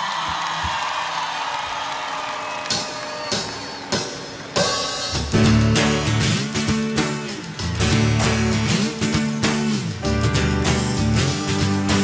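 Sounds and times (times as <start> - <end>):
crowd cheering: 0.0 - 9.0
live pop-rock band: 2.8 - 12.0.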